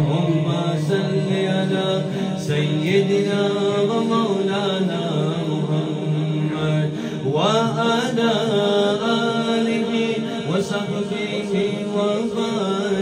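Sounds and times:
man singing into a microphone: 0.0s - 13.0s.

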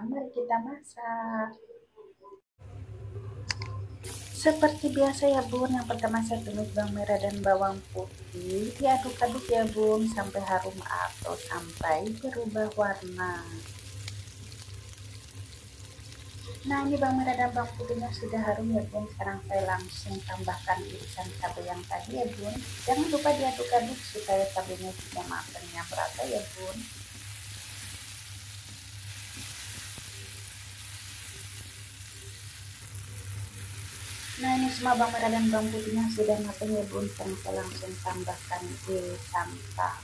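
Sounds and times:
low steady hum: 2.6s - 40.0s
shallots sizzling in hot oil: 4.0s - 40.0s.

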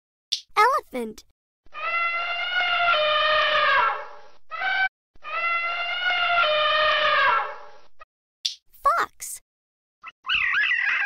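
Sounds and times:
elephant trumpeting: 1.8s - 7.8s.

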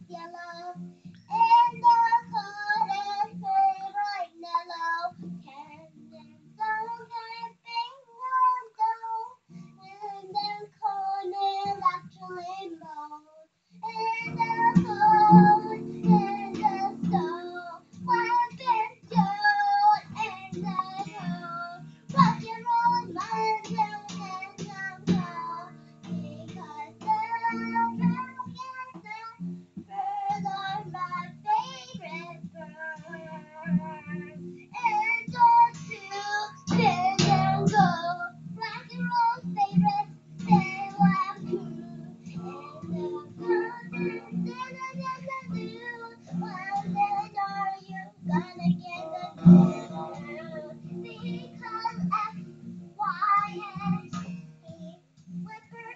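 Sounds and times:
acoustic guitar strumming: 0.0s - 7.2s, 13.8s - 55.9s
girl singing: 0.0s - 55.9s.

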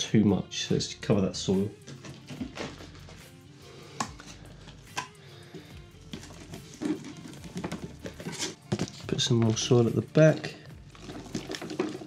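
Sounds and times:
soft background music: 0.0s - 12.0s
plastic tub knocks and rustles: 6.1s - 9.7s, 11.0s - 12.0s.

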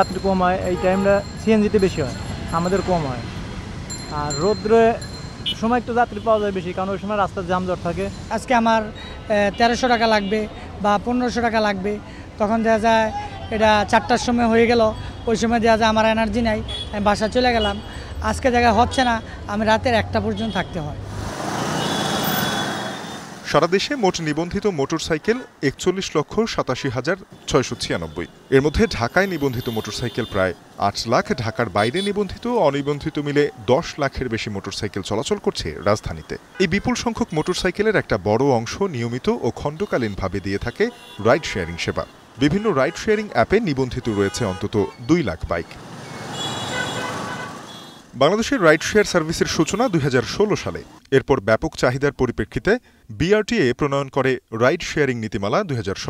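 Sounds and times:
man speaking: 0.0s - 3.3s, 4.1s - 16.3s, 23.5s - 45.8s, 48.2s - 56.0s
person speaking: 0.0s - 3.3s, 4.0s - 21.0s
motorcycles and cars passing: 0.0s - 23.7s, 27.2s - 34.8s, 45.6s - 48.1s
dense city traffic: 0.0s - 56.0s
vehicle horn: 0.6s - 1.2s, 21.7s - 23.3s, 40.8s - 43.2s, 44.1s - 45.0s, 46.3s - 48.1s.

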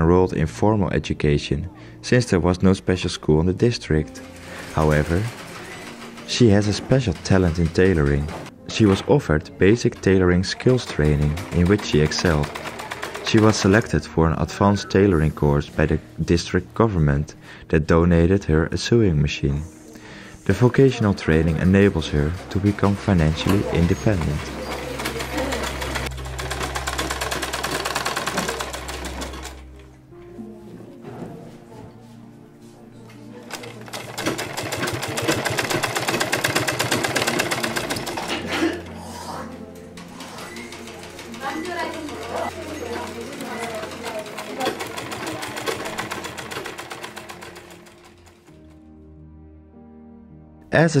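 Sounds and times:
soft background music: 0.0s - 51.0s
sewing machine stitching: 4.2s - 9.1s, 9.7s - 14.0s, 21.3s - 29.6s, 33.5s - 38.9s, 39.9s - 48.5s.

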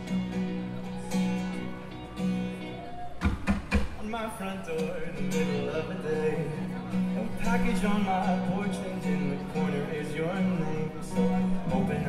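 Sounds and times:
drum hits: 3.2s - 4.0s
person singing: 4.0s - 12.0s.

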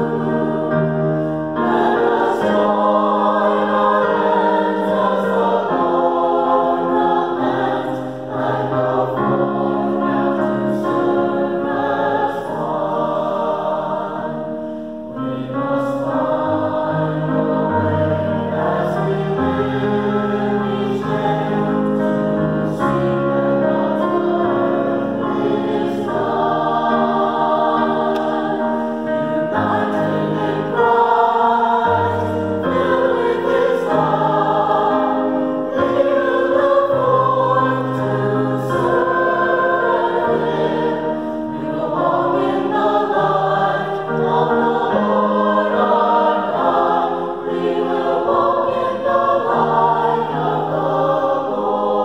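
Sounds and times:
digital piano accompaniment: 0.0s - 52.0s
mixed choir singing in parts: 0.0s - 52.0s.

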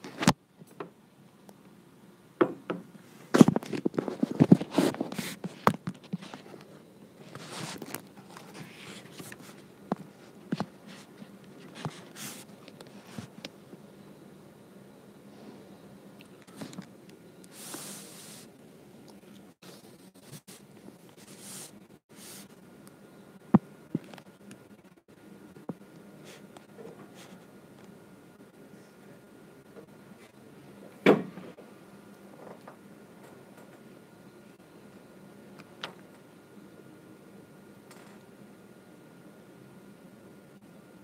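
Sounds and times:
low steady hum: 0.0s - 41.0s
handling rustle: 3.1s - 13.4s.

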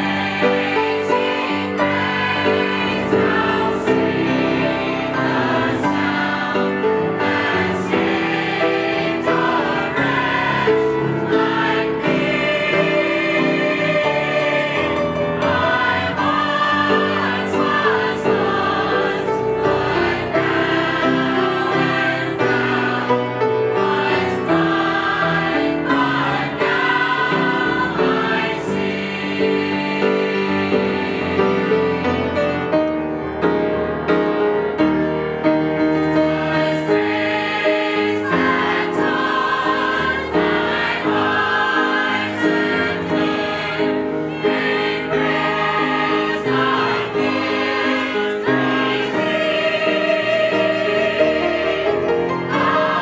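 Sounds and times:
choir singing a hymn: 0.0s - 34.8s, 35.4s - 53.0s.

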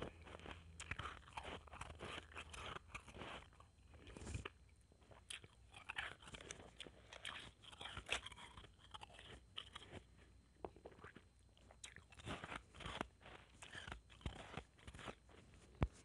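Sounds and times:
ice being chewed: 0.0s - 16.0s.

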